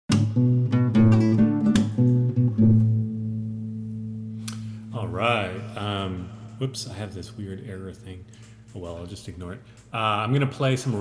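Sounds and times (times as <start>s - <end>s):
classical guitar plucked: 0.1s - 4.8s
man's voice: 4.9s - 8.2s.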